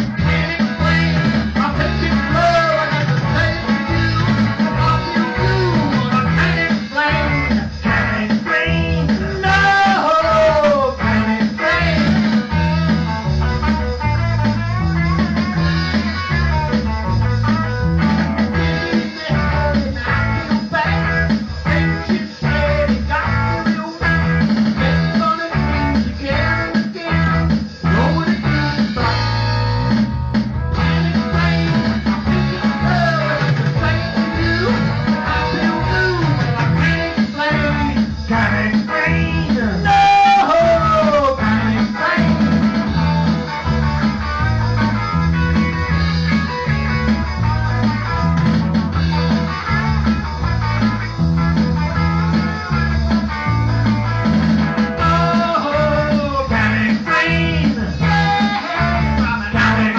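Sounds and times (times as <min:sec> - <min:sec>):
person singing: 0:00.0 - 0:13.2, 0:18.5 - 0:29.6, 0:30.8 - 0:45.0, 0:55.0 - 0:59.9
bass line: 0:00.0 - 0:59.9
electric guitar: 0:00.0 - 0:59.9
live rock band playing: 0:00.0 - 0:59.9.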